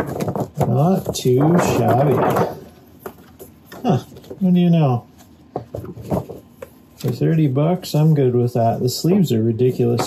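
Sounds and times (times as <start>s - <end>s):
paper sheets tapping: 0.0s - 4.5s
laminated paper rustling: 0.0s - 10.0s.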